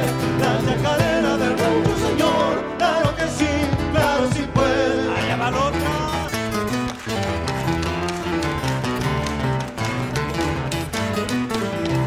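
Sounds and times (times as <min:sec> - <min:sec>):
accordion: 0:00.0 - 0:12.0
acoustic guitars strumming: 0:00.0 - 0:12.0
hand claps: 0:05.7 - 0:12.0.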